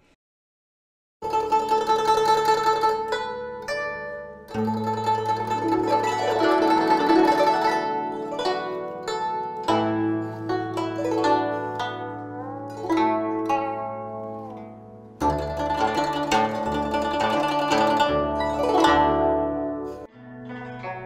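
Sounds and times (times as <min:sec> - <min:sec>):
plucked zither notes: 0:01.2 - 0:21.0.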